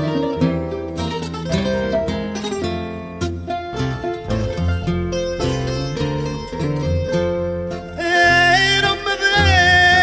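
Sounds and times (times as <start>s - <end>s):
acoustic guitar plucking: 0.0s - 10.0s.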